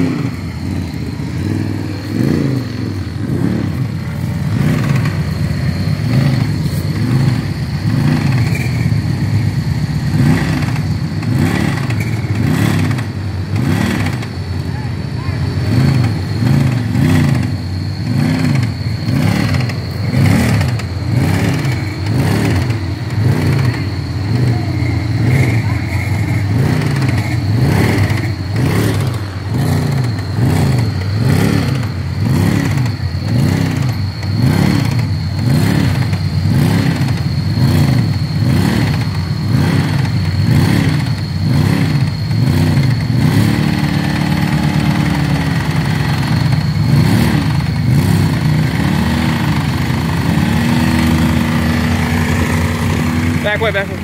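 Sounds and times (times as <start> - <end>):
engine revving: 0.0 - 54.0.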